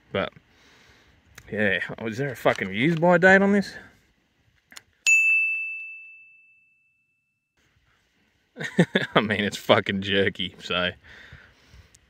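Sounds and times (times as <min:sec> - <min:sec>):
bell ding: 0:05.0 - 0:07.4.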